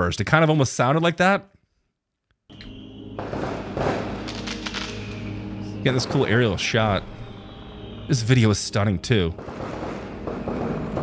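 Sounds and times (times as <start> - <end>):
low musical drone: 2.5 - 11.0
firework bangs and crackle: 2.7 - 8.2, 9.4 - 11.0.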